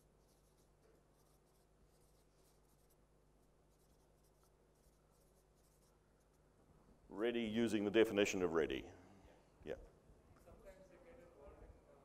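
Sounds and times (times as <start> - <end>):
marker scratching on whiteboard: 0.0 - 6.4.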